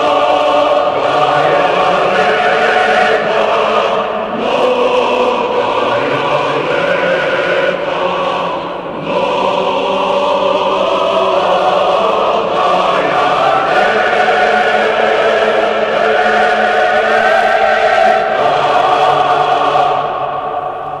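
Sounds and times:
choir singing held chords: 0.0s - 21.0s.

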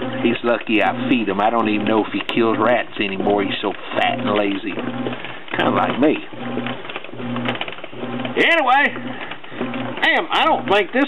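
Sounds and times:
washing machine motor pulsing: 0.0s - 11.0s.

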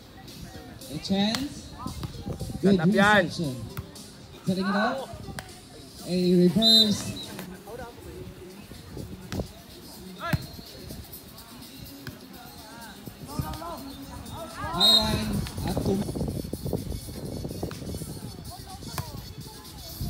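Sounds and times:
voices calling out: 0.0s - 16.2s
music: 0.0s - 20.0s.

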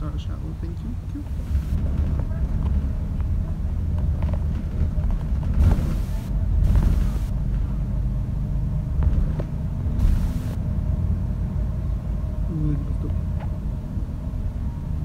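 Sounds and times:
bus drivetrain rumble: 0.0s - 15.0s
road noise: 0.0s - 15.0s
short bursts of hiss: 10.0s - 10.6s.

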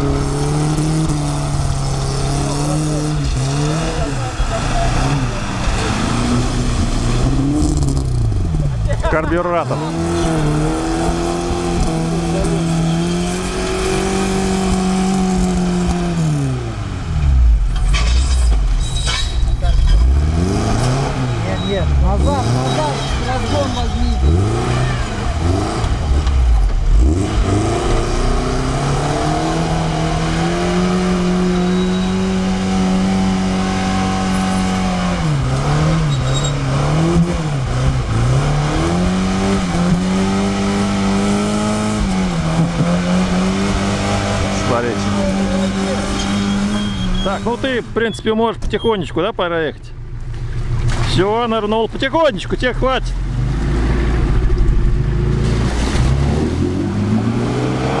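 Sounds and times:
car engine revving: 0.0s - 58.0s
water splashing around wheels: 50.1s - 52.6s, 53.2s - 58.0s.

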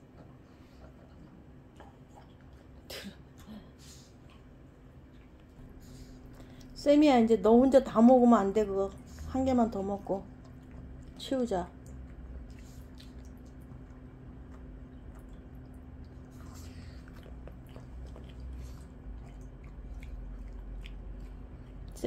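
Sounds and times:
low steady hum: 0.0s - 22.0s
dogs chewing crunchy food: 7.9s - 22.0s.

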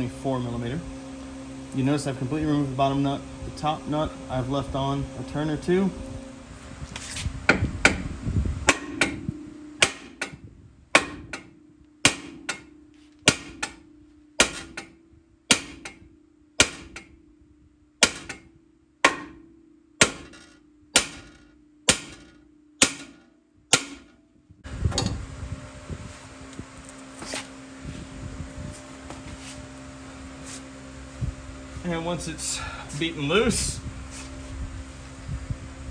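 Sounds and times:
steady hum: 0.0s - 35.9s
hammer striking steel: 8.7s - 10.4s, 11.0s - 17.2s, 18.0s - 24.2s.

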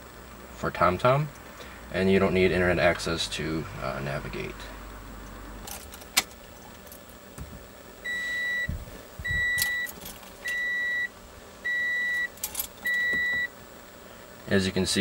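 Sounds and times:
car dashboard warning chime: 8.1s - 8.7s, 9.3s - 9.9s, 10.5s - 11.1s, 11.7s - 13.5s.

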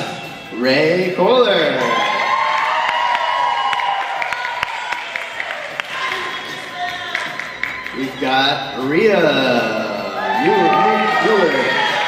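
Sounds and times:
long high-pitched cheer: 1.6s - 12.0s
audience cheering and whooping: 1.7s - 8.3s, 10.0s - 12.0s
scattered claps: 2.9s - 8.2s.

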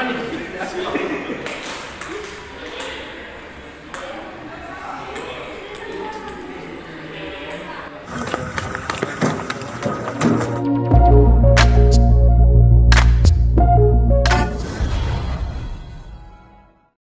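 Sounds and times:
background talk: 0.0s - 8.4s
music: 10.2s - 17.0s.

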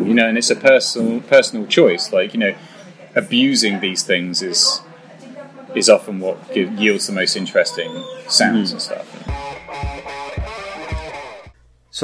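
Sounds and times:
distorted electric guitar riff: 9.2s - 11.6s.

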